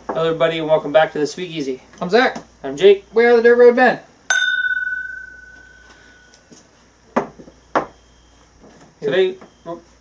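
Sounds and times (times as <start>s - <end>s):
glasses clinking: 4.3s - 6.4s.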